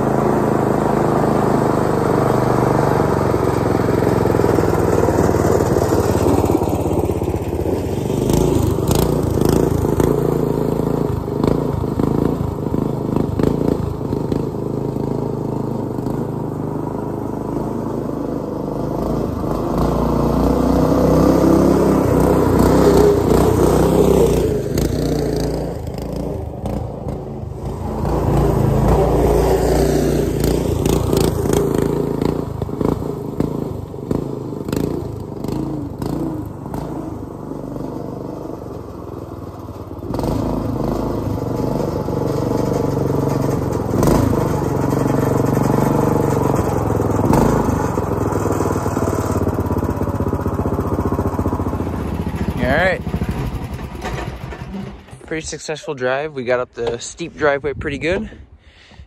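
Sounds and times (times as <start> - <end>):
golf cart engine revving: 0.0 - 57.2.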